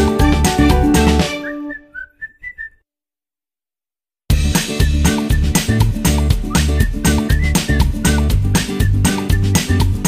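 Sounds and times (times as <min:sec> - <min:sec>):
whistled tune: 0:01.2 - 0:02.8, 0:04.7 - 0:10.0.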